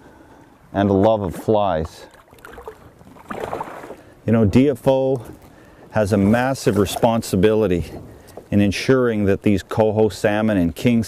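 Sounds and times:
water lapping against boat: 0:01.8 - 0:08.3.

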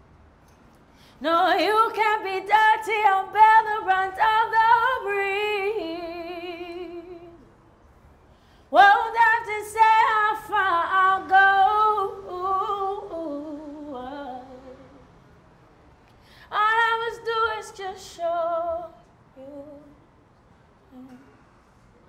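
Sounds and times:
woman singing a cappella: 0:01.1 - 0:07.5, 0:08.7 - 0:15.0, 0:16.4 - 0:20.0, 0:20.9 - 0:21.4.

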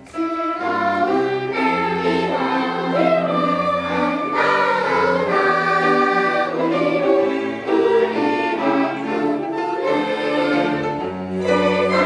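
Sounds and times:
children's choir singing: 0:00.0 - 0:12.0
strings: 0:00.0 - 0:12.0.

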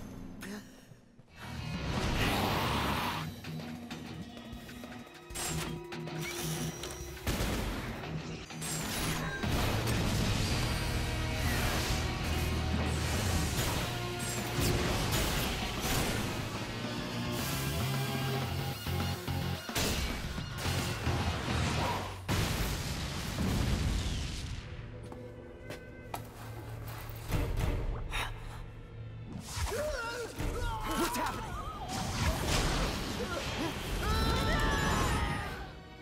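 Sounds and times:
action background music: 0:01.3 - 0:36.0
explosion: 0:22.3 - 0:24.8.

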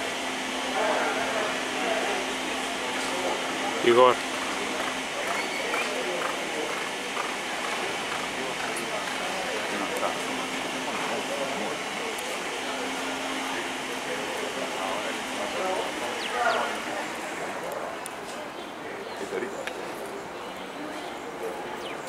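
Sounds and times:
indistinct voices talking: 0:00.0 - 0:22.0
steady background noise: 0:00.0 - 0:22.0.

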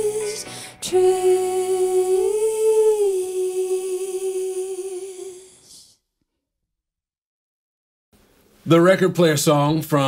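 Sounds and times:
woman singing a long note: 0:00.0 - 0:05.9.

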